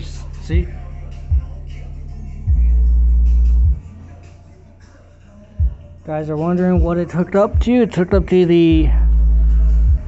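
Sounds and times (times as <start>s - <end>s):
subwoofer playing bass-heavy music: 0.0s - 10.0s.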